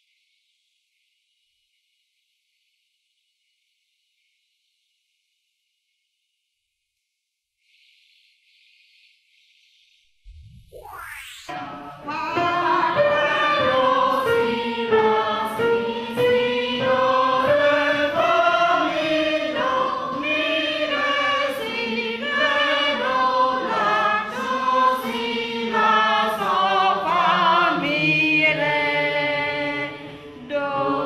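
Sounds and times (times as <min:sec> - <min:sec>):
choir singing: 0:11.5 - 0:31.0.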